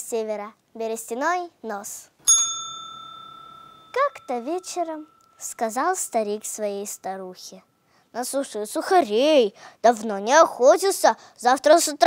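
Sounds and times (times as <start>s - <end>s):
desk bell ding: 2.3s - 7.1s.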